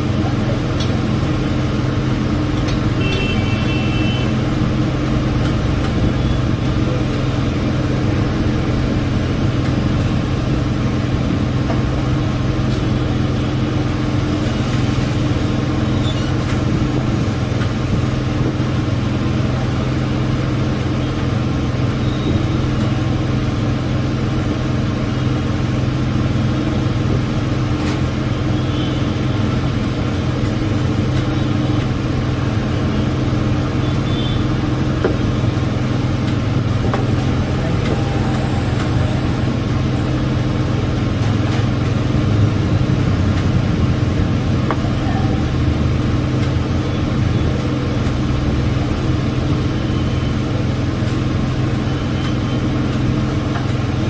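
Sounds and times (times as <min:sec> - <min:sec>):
low mechanical hum: 0:23.9 - 0:54.0.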